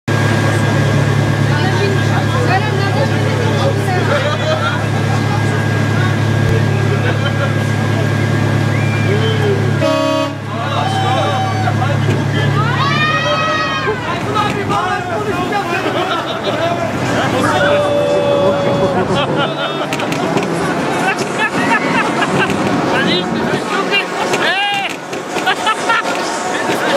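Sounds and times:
low machine hum: 0:00.1 - 0:26.9
voices: 0:00.1 - 0:26.9
short horn toot: 0:09.8 - 0:10.5.

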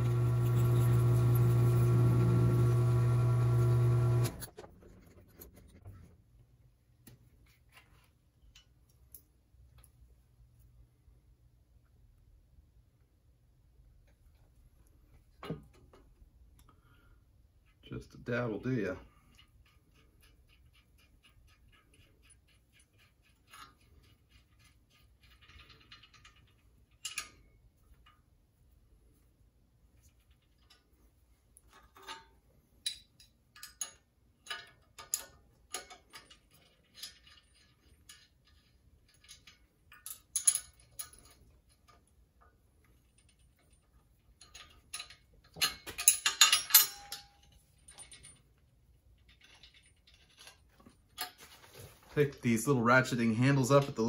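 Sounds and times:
steel parts clicking and clinking: 0:17.6 - 0:28.3, 0:30.0 - 0:51.7
metallic rattle: 0:19.1 - 0:28.2, 0:42.8 - 0:51.8.

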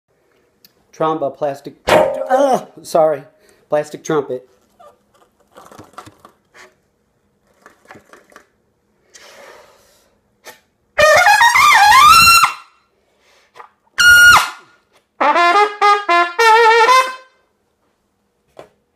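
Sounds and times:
trumpet playing: 0:11.0 - 0:12.7, 0:14.0 - 0:17.4.

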